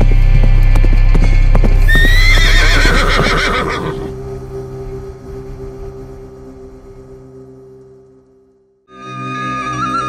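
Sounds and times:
horse hooves galloping: 0:00.0 - 0:04.2
deep music drone: 0:00.0 - 0:10.0
sustained musical tone: 0:00.0 - 0:10.0
horse neighing: 0:01.9 - 0:04.1.

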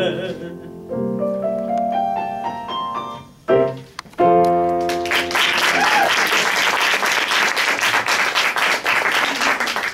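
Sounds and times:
grand piano playing: 0:00.0 - 0:05.8.

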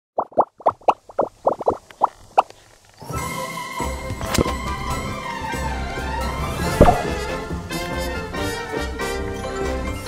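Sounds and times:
rising popping blips: 0:00.2 - 0:02.6
music: 0:03.0 - 0:10.0.

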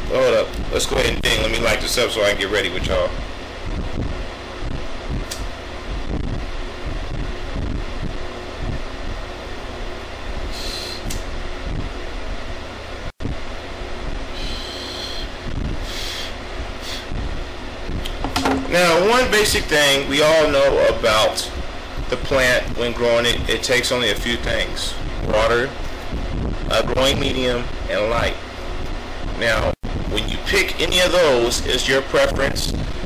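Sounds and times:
low fan-like hum: 0:00.0 - 0:33.0
short hissing: 0:10.5 - 0:11.2, 0:14.3 - 0:17.1.

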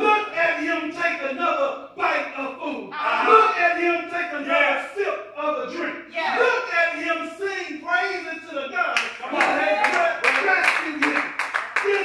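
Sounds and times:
man preaching: 0:00.0 - 0:12.0
hands clapping: 0:09.0 - 0:12.0.

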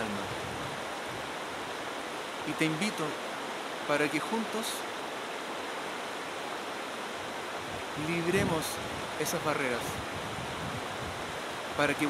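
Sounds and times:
stream flowing over stones: 0:00.0 - 0:12.0.

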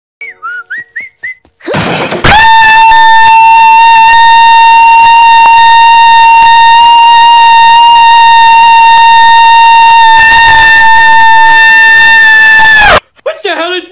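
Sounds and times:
loud distorted held note: 0:02.3 - 0:13.0.

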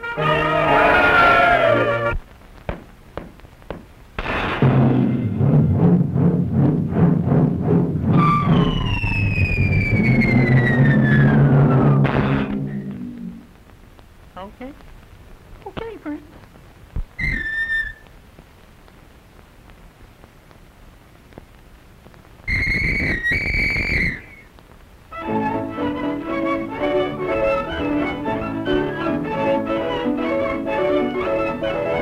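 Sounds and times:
low orchestral notes: 0:00.0 - 0:02.2, 0:25.2 - 0:32.0
cartoon falling whistle: 0:08.1 - 0:12.1, 0:17.2 - 0:18.0, 0:22.5 - 0:24.4.

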